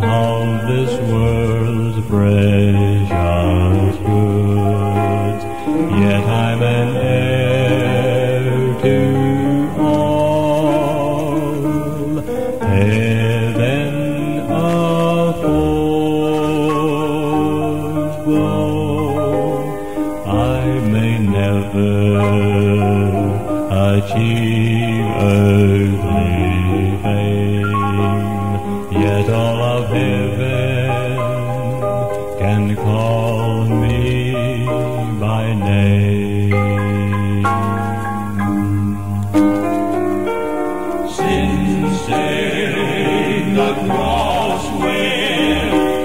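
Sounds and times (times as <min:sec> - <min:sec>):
male quartet singing in harmony: 0:00.0 - 0:46.0.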